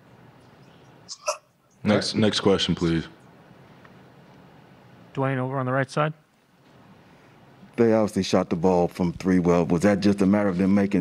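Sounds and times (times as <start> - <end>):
man speaking: 7.8 - 11.0.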